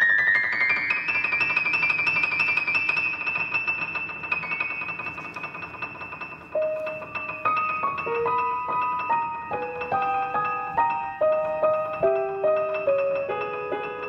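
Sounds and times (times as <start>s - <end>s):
grand piano playing: 0.0s - 14.0s.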